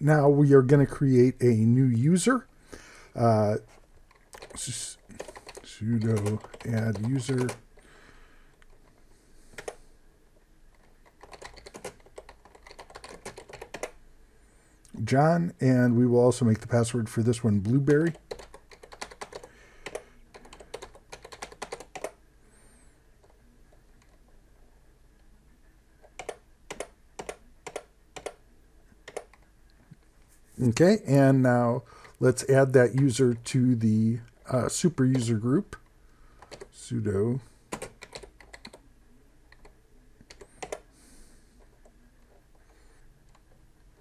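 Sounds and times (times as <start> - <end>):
typing on computer keyboard: 4.1 - 7.6, 9.5 - 9.8, 10.7 - 14.0, 17.9 - 22.2, 26.1 - 28.4, 29.0 - 29.4, 36.4 - 36.7, 37.7 - 38.8, 39.5 - 40.9.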